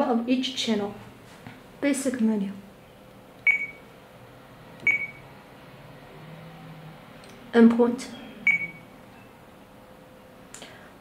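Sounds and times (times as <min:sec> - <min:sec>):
short high beeps: 0:03.5 - 0:03.8, 0:04.9 - 0:05.2, 0:08.5 - 0:08.8.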